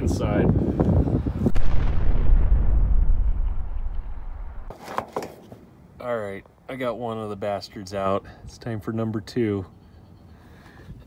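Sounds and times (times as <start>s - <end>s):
deep boom with sharp crack: 1.4s - 4.7s
low rumble: 1.4s - 4.7s.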